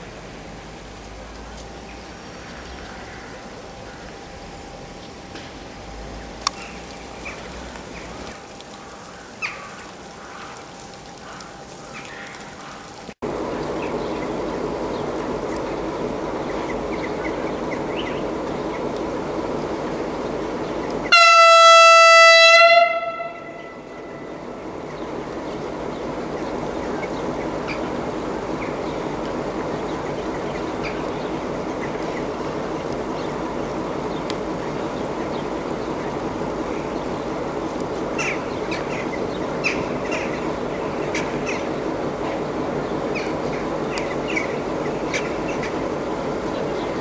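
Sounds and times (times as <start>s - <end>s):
train running noise: 0.0s - 47.0s
locomotive horn blast: 21.1s - 24.8s.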